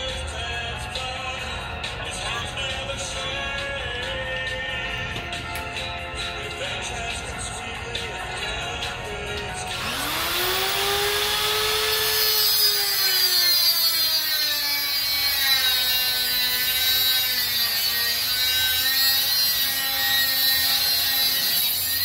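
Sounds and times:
angle grinder grinding metal: 9.3 - 22.0.

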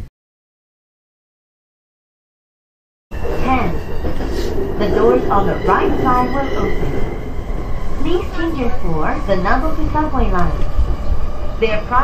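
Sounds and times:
electric train rumbling: 3.1 - 12.0
automated announcement voice: 3.2 - 10.7, 11.6 - 12.0.

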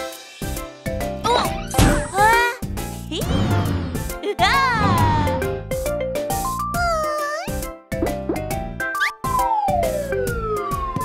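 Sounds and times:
bouncy children's music: 0.0 - 11.0.

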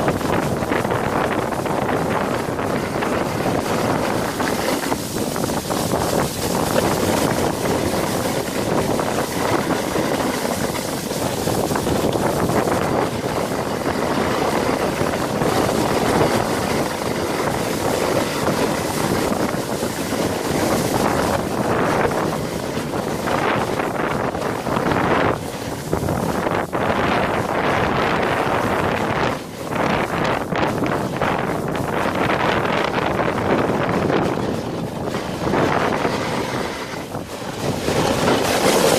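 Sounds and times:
sled scraping on snow: 0.0 - 38.9
wind on microphone: 0.0 - 38.9.

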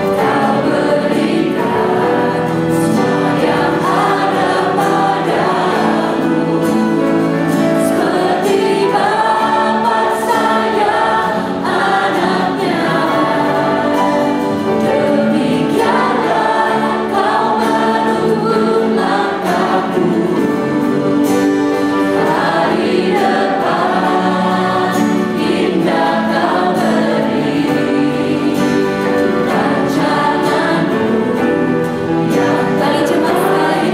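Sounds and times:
piano and keyboard: 0.0 - 33.9
vocalists singing through microphones: 0.0 - 33.9.

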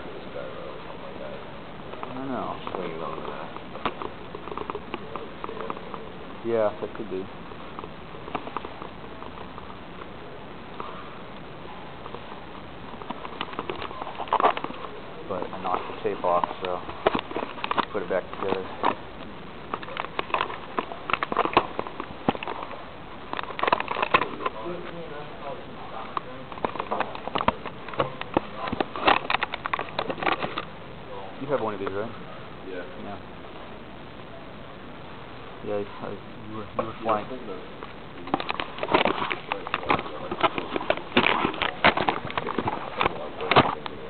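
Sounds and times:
faint voices: 0.0 - 44.0
camera handling noise: 38.2 - 43.9.

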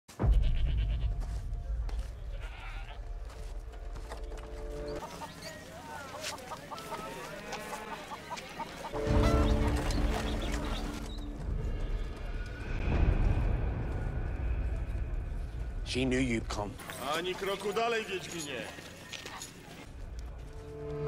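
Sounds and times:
deep low music with held notes: 0.2 - 5.0, 19.9 - 21.0
goat bleating: 0.4 - 1.0, 2.3 - 3.0, 6.8 - 8.3
animal calls: 4.7 - 12.0
market voices: 5.0 - 11.2, 15.9 - 20.4.

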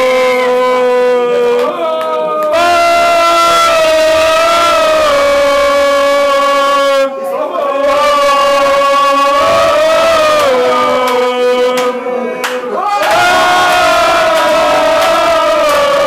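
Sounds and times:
voices shouting long notes: 0.0 - 16.0.

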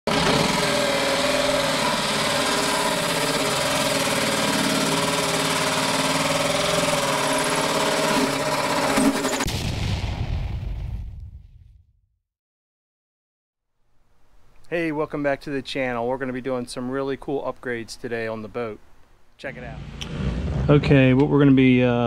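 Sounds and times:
power drill with hole saw cutting: 0.1 - 9.5.

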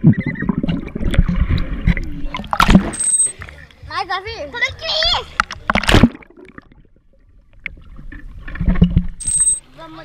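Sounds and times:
water rumbling and knocking: 0.0 - 3.5, 5.0 - 9.2
muffled underwater water sound: 0.0 - 3.8, 4.8 - 10.0.

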